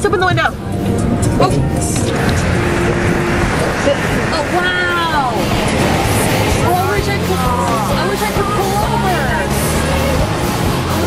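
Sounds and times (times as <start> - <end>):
car road and engine noise: 0.0 - 11.0
music with voice: 0.0 - 11.0.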